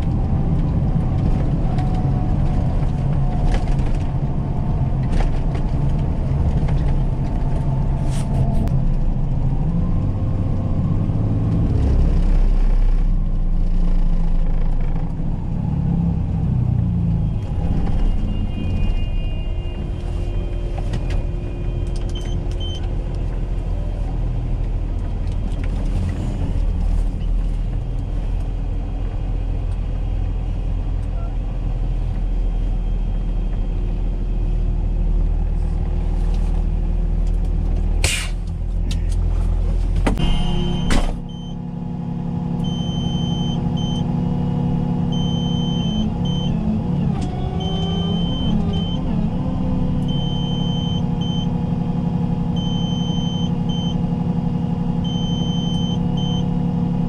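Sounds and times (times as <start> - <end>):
truck engine and road noise: 0.0 - 57.0
high electronic beep: 40.2 - 41.6, 42.6 - 44.1, 45.1 - 46.6, 50.1 - 51.5, 55.1 - 56.5.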